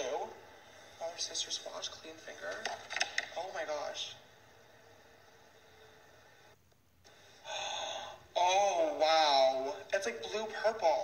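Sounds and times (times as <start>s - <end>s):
person gasping: 7.4s - 8.3s.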